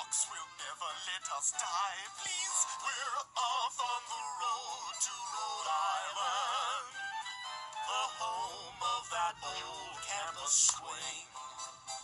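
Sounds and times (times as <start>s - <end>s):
men singing with vibrato: 0.0s - 7.1s, 7.8s - 11.3s.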